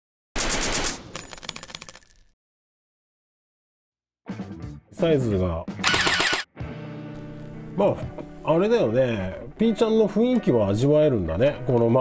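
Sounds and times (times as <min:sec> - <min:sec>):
shell casings clinking: 0:01.2 - 0:02.3.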